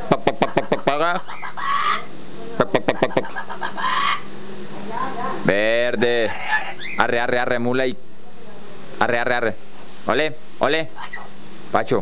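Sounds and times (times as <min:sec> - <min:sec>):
parrot mimicking hen clucking: 0:00.0 - 0:04.3, 0:05.6 - 0:07.1, 0:10.9 - 0:11.4.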